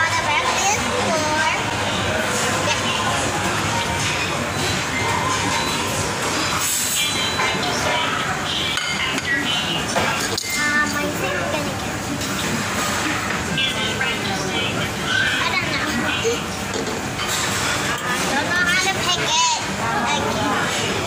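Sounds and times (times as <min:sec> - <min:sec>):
many voices chattering: 0:00.0 - 0:21.0.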